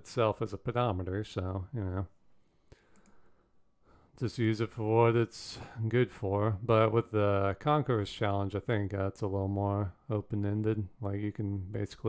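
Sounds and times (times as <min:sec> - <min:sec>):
soft breath: 0:02.4 - 0:04.2.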